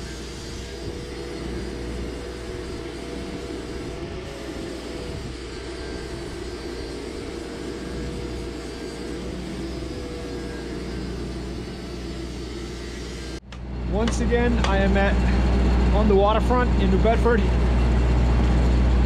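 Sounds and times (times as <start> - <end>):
arc welding hiss: 0.0 - 13.4.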